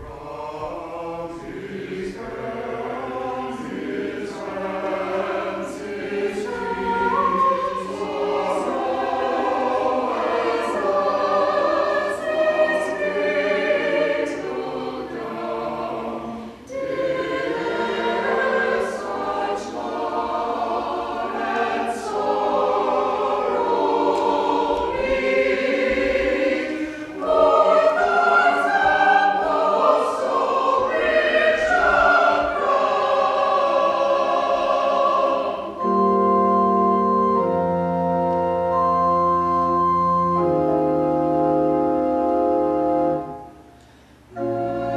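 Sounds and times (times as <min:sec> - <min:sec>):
mixed choir singing: 0:00.0 - 0:38.8, 0:44.3 - 0:44.9.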